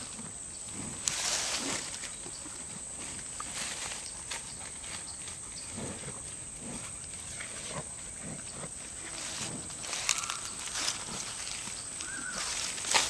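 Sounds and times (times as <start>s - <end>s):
cow chewing: 0.0s - 13.0s
cow tearing grass: 0.0s - 13.0s.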